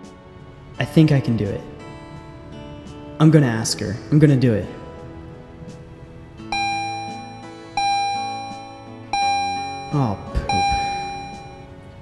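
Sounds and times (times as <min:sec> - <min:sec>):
quiet background music: 0:00.0 - 0:12.0
bell-like chime notes: 0:06.5 - 0:11.7.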